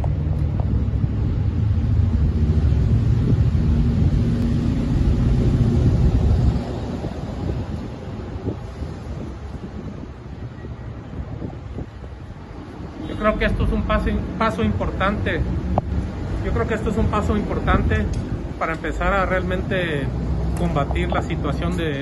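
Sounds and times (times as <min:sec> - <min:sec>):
street traffic engine rumble: 0:00.0 - 0:22.0.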